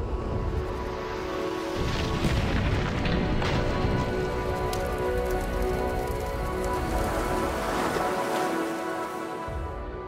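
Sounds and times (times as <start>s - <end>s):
rain and wind rushing: 0.0s - 10.0s.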